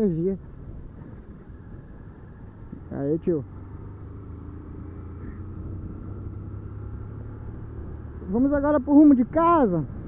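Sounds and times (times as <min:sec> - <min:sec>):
road noise: 0:00.0 - 0:10.0
motorcycle engine running: 0:00.5 - 0:10.0.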